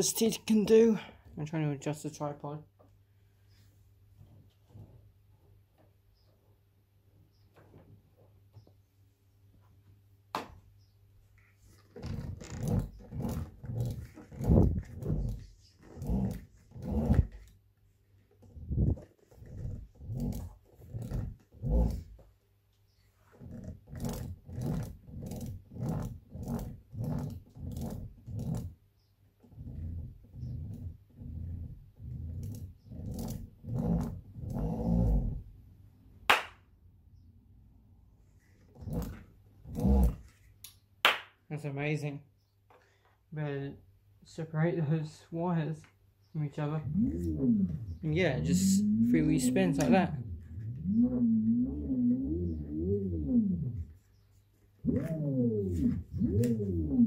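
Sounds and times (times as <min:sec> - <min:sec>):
motor growling buzzes: 0:46.8 - 0:54.0, 0:54.8 - 0:57.0.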